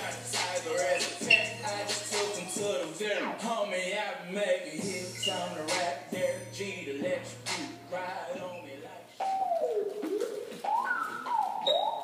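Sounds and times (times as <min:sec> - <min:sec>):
gliding whistle-like tone: 0:09.2 - 0:12.0.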